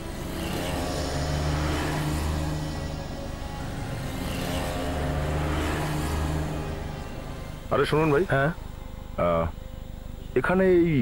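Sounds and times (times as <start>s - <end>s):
low background music: 0.0s - 11.0s
road traffic passing: 0.0s - 11.0s.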